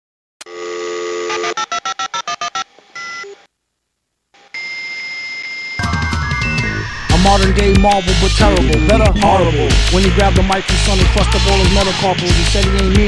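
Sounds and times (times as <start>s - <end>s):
dial tone: 0.4s - 3.4s
long steady telephone tone: 0.4s - 3.5s, 4.4s - 5.8s
hip-hop beat: 7.1s - 13.0s.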